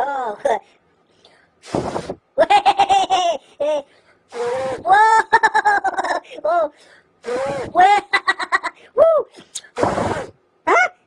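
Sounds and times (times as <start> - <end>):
person laughing: 2.4 - 3.9, 4.9 - 6.5.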